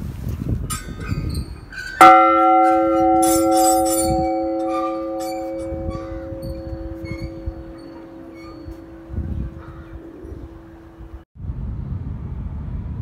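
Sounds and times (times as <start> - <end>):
large temple bell ringing: 2.0 - 11.2.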